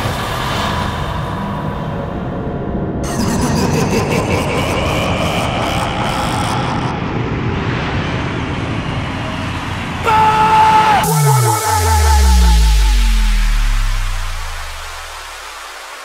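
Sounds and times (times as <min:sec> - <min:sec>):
hiss rising in pitch: 0:10.1 - 0:16.0
held electronic tone: 0:11.0 - 0:15.6.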